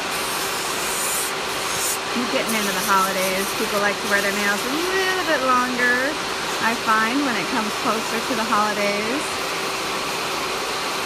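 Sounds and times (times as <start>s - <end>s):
electric nail file sanding: 0.0s - 11.0s.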